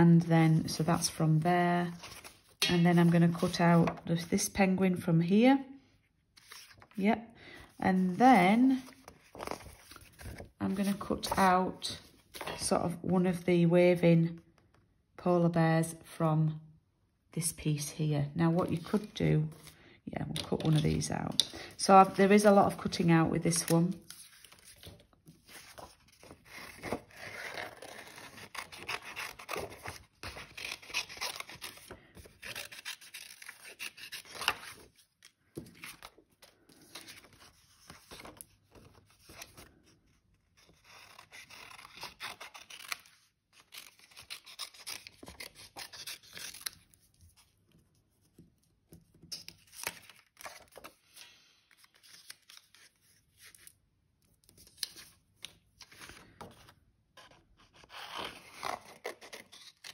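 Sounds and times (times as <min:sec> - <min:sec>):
paper rustling: 0:01.8 - 0:04.3, 0:06.3 - 0:07.0, 0:07.9 - 0:12.7, 0:23.5 - 0:39.8, 0:49.2 - 0:53.7
scissors snipping paper: 0:26.2 - 0:34.8, 0:40.6 - 0:47.0.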